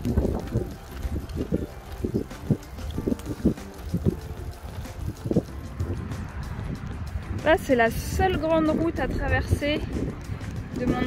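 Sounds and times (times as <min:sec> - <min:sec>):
bicycle rolling rumble: 0:00.0 - 0:11.0
wind on microphone: 0:00.0 - 0:11.0.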